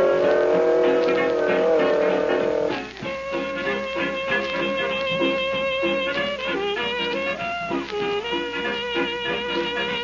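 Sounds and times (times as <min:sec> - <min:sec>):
swing band music with brass: 0:00.0 - 0:10.0.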